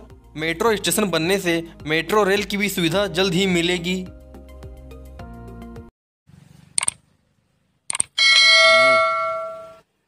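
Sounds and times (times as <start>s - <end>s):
notification bell chime: 8.2s - 9.8s.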